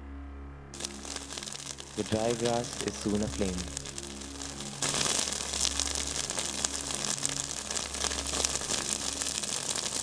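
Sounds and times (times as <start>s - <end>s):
music drone: 0.0s - 10.0s
dry grass fire crackling: 0.7s - 10.0s.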